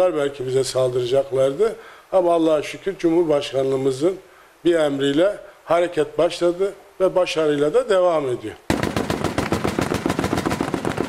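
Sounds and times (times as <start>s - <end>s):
machine gun firing: 8.7s - 11.0s.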